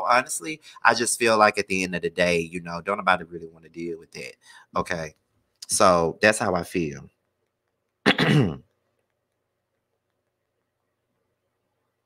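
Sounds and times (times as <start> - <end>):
man clearing his throat: 8.0 - 8.7.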